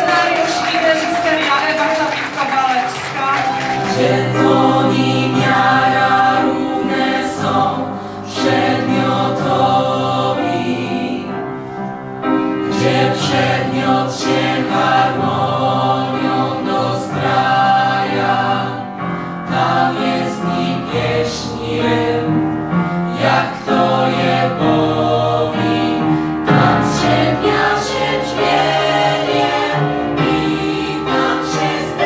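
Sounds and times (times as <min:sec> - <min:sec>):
young voices singing together: 0:03.0 - 0:11.6, 0:12.5 - 0:32.0.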